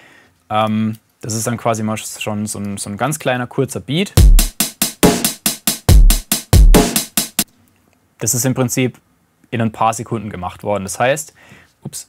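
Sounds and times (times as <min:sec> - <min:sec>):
drum machine beat: 0:04.2 - 0:07.5.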